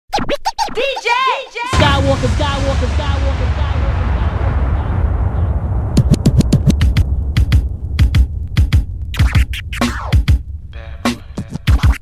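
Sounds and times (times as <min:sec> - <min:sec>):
record scratching on turntable: 0:00.1 - 0:01.4, 0:06.0 - 0:12.0
hip hop beat with heavy bass: 0:06.0 - 0:12.0.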